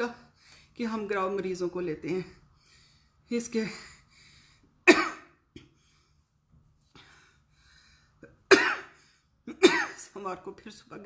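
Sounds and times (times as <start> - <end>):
woman coughing: 4.8 - 5.7, 8.4 - 10.2.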